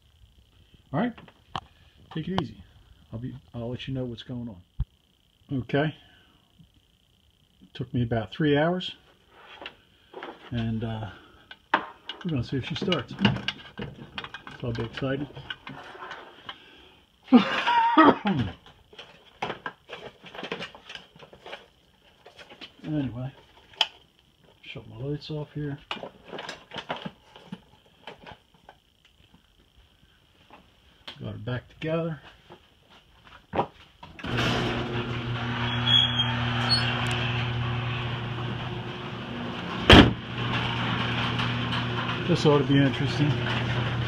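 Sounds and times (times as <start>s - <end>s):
steady machine hum: 0.0s - 44.0s
car hood slamming shut: 39.9s - 40.2s.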